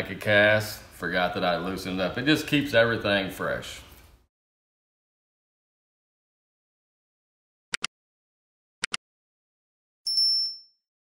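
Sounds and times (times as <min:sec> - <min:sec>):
high electronic ding: 0:10.1 - 0:10.8.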